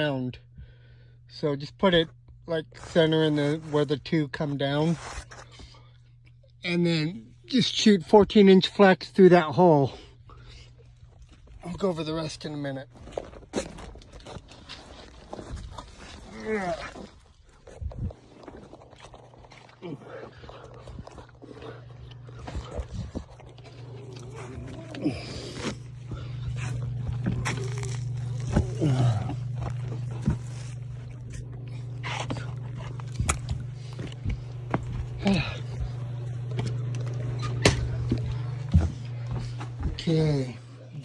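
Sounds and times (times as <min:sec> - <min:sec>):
low hum: 0:00.0 - 0:41.0
scuffs on gravel floor: 0:12.4 - 0:40.5
footsteps: 0:25.4 - 0:40.2.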